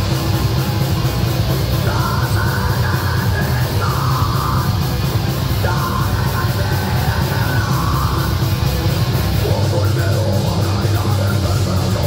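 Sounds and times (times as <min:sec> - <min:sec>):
heavy metal band playing: 0:00.0 - 0:12.0
shouted vocals: 0:01.9 - 0:04.8, 0:05.5 - 0:08.4.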